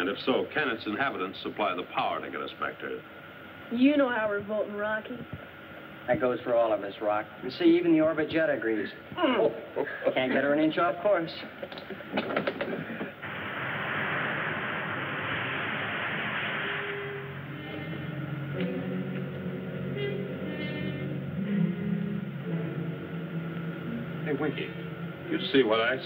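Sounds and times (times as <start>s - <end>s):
steady rushing hiss: 0.0s - 26.0s
music of long held low notes: 13.2s - 26.0s.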